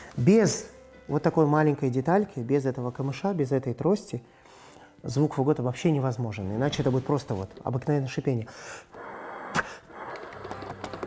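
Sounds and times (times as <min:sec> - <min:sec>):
breathy hiss through bocal: 0:04.3 - 0:05.0, 0:08.4 - 0:10.7.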